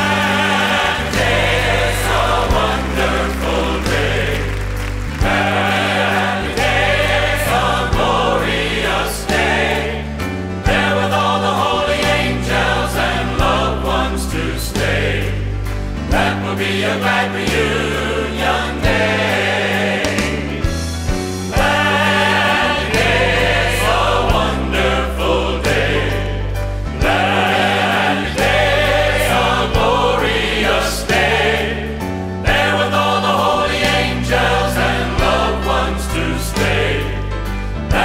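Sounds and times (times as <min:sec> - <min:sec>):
gospel choir singing: 0:00.0 - 0:38.0
piano and band accompaniment: 0:00.0 - 0:38.0.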